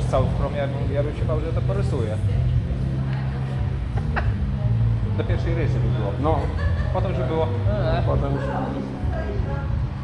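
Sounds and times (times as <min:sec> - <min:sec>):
people talking in a room: 0:00.0 - 0:10.0.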